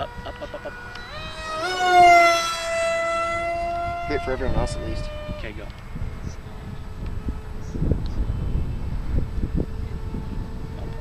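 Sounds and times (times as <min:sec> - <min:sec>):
electric motor and propeller whining: 0:00.0 - 0:11.0.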